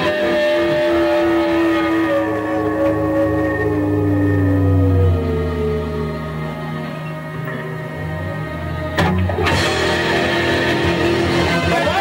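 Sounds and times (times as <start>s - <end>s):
low bass tone: 0.0s - 11.9s
electric guitars sustained chord: 0.0s - 12.0s.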